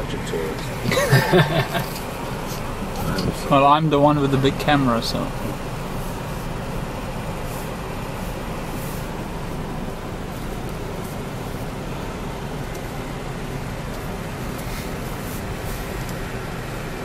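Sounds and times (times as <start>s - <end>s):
car engine and tyres rumbling: 0.0s - 17.0s.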